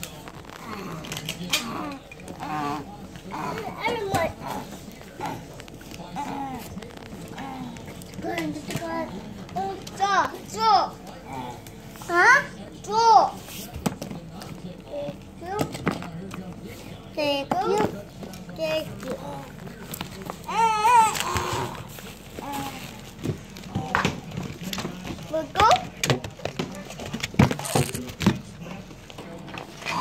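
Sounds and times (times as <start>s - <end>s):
book pages flipping: 0.0s - 2.4s, 18.2s - 29.8s
toddler speaking: 3.3s - 4.6s, 7.4s - 13.4s.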